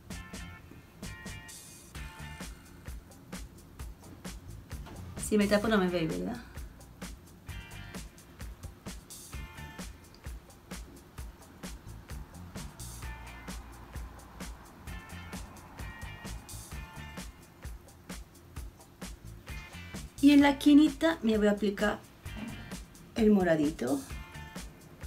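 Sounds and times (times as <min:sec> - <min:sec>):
quiet background music with beat: 0:00.0 - 0:25.0.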